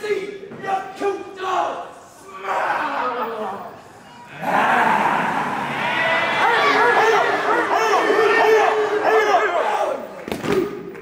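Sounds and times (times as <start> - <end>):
men yelling and barking: 4.4 - 10.0.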